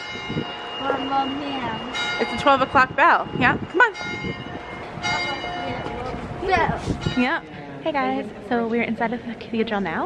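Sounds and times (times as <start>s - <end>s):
church bells ringing: 0.0s - 7.6s.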